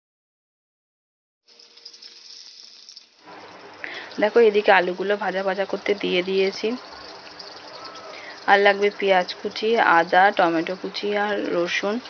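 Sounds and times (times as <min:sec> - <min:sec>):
stovetop cooking hiss: 0:01.5 - 0:12.0.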